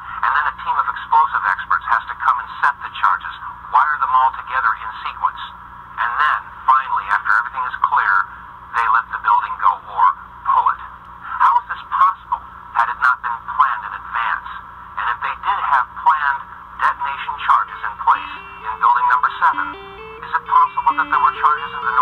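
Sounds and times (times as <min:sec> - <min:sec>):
telephone-like speech: 0:00.2 - 0:22.0
plucked guitar melody: 0:18.2 - 0:22.0.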